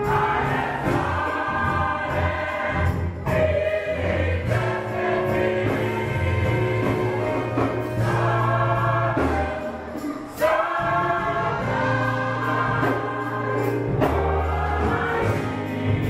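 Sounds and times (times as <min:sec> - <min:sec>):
gospel choir singing: 0:00.0 - 0:16.0.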